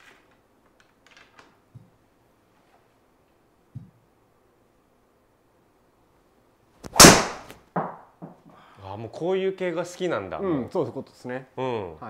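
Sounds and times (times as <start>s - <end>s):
golf driver striking ball: 6.9s - 7.5s.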